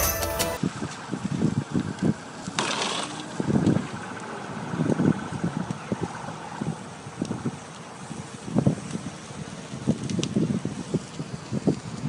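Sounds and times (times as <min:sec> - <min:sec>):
car fire flames rumbling: 0:00.6 - 0:12.0.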